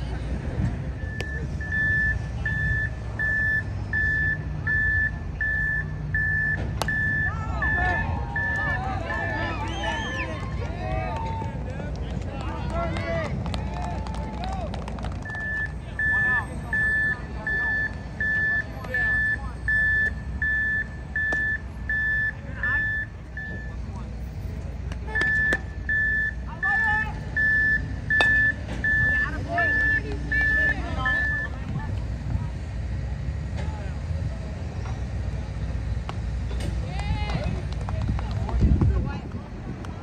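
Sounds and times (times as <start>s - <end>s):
vehicle backup alarm beeping: 0.9s - 10.3s, 15.2s - 23.9s, 25.0s - 31.6s.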